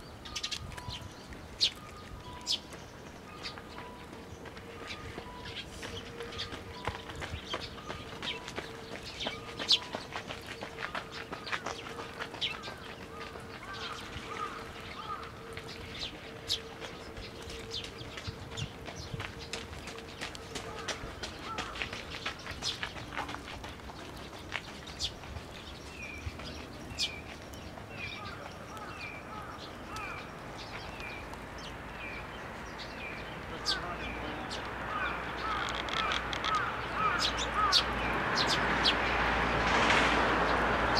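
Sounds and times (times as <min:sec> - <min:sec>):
young birds chirping: 0:00.0 - 0:39.3.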